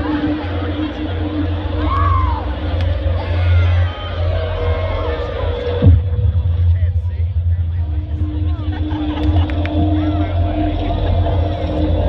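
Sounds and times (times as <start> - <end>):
crowd chatter: 0.0 - 12.0
deep bass drone: 0.0 - 12.0.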